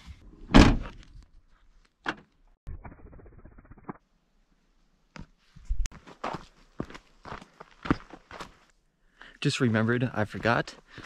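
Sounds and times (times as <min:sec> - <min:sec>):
footsteps on dirt trail: 0:05.2 - 0:08.7, 0:09.6 - 0:11.0.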